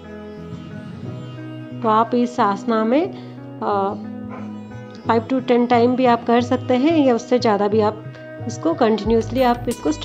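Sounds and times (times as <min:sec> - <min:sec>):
background music with low drone: 0:00.0 - 0:10.0.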